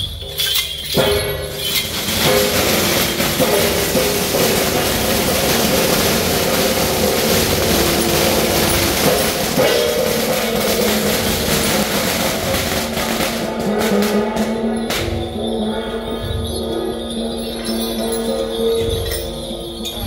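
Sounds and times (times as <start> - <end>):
firecrackers crackling: 0.2 - 14.1.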